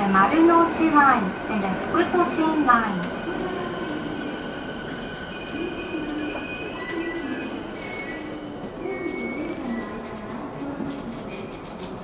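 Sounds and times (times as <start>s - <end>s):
high-pitched wheel squeals: 5.3s - 10.0s.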